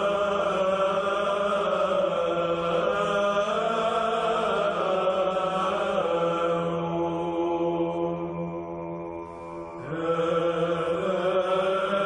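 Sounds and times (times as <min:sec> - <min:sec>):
sung chant: 0:00.0 - 0:12.0.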